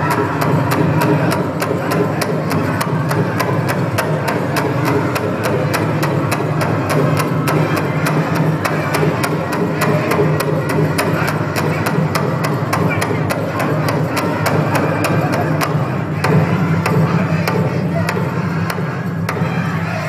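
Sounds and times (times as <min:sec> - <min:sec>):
powwow drum beating: 0:00.0 - 0:20.0
reverberant arena din: 0:00.0 - 0:20.0.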